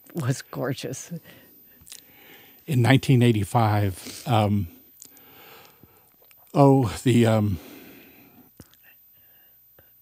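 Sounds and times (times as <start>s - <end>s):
faint breathing: 1.2s - 2.7s, 3.9s - 4.4s, 5.0s - 6.2s, 7.5s - 10.0s.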